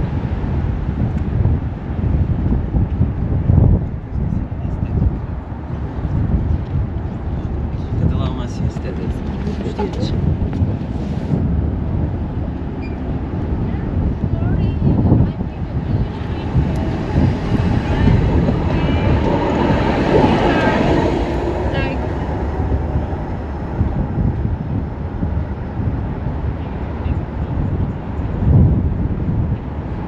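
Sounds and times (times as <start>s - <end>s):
city traffic rumble: 0.0s - 30.0s
tram passing: 0.0s - 30.0s
wind buffeting microphone: 0.0s - 30.0s
passers-by talking: 4.0s - 11.0s, 13.4s - 24.2s, 26.0s - 30.0s.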